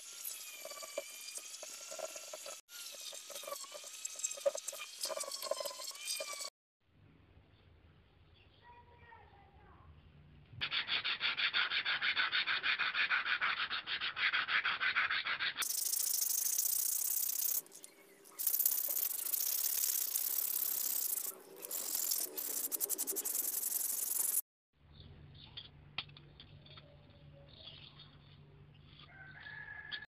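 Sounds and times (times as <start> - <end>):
hissing rub: 18.4 - 24.4.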